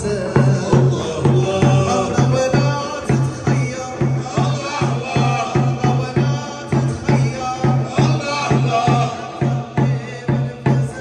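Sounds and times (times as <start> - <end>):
large drum beaten with stick: 0.0 - 11.0
man singing: 0.0 - 11.0.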